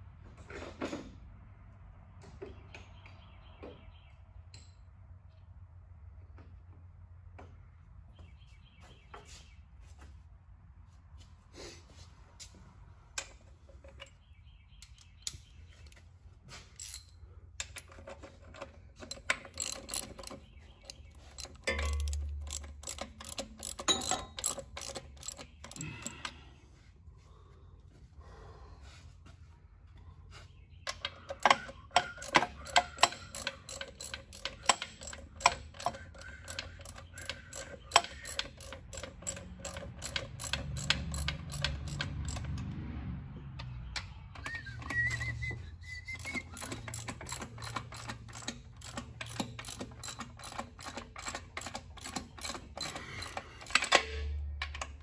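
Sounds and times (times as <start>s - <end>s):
hand ratchet clicking: 16.8s - 26.3s, 30.9s - 42.6s, 44.4s - 55.0s.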